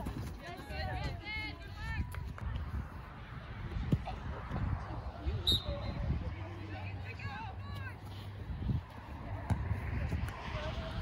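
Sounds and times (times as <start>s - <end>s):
ball being kicked: 9.4s - 10.4s.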